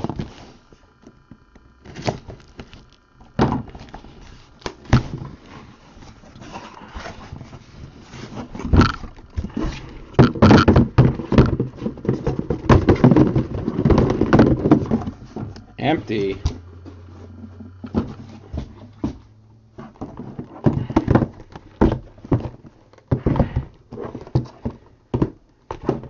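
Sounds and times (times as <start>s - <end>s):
cardboard and plastic rustling: 0.0s - 26.0s
boxes thunking on table: 1.8s - 5.4s, 7.0s - 15.6s, 17.5s - 26.0s.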